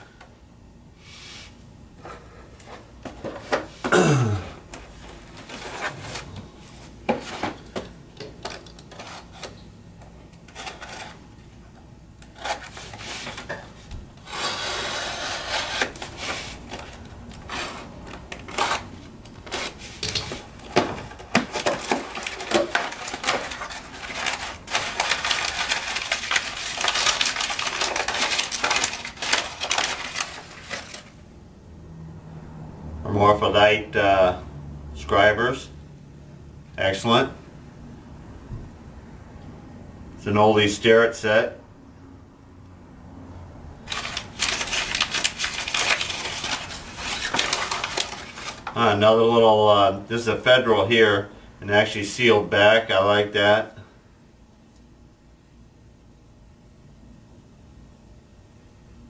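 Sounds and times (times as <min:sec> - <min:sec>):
packing paper rustling: 0:04.9 - 0:09.6, 0:10.4 - 0:11.3, 0:12.2 - 0:31.2, 0:43.8 - 0:49.0
tape and cardboard tearing: 0:08.4 - 0:09.6, 0:10.4 - 0:11.2, 0:12.2 - 0:13.6, 0:14.2 - 0:31.2, 0:43.9 - 0:48.8.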